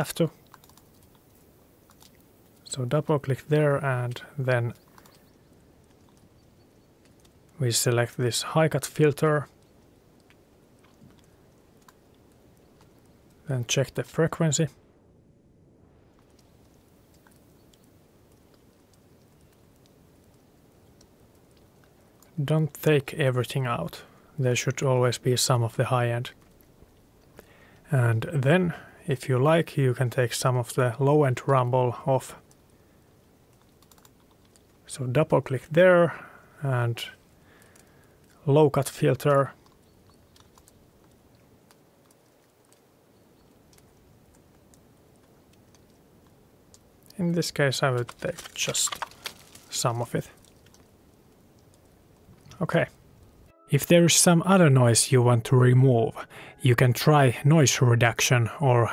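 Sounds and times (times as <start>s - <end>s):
water dripping: 0.0s - 14.0s, 16.1s - 54.4s
soft recorder hiss: 0.0s - 58.9s
soft clicks: 0.4s - 2.7s, 4.7s - 7.6s, 9.5s - 13.4s, 16.1s - 22.4s, 33.5s - 34.8s, 39.2s - 53.6s.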